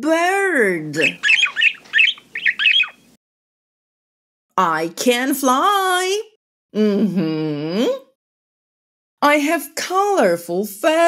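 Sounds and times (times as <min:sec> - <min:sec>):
bird chirping: 0:00.9 - 0:03.2.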